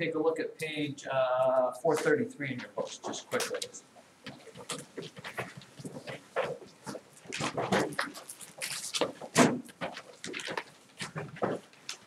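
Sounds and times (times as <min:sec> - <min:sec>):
textbook pages being leafed through: 0:04.3 - 0:12.0.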